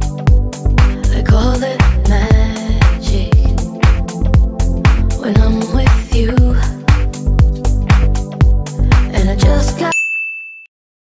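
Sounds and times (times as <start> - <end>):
dance music with kick drum: 0.0 - 9.9
bright electronic ding: 9.9 - 10.7.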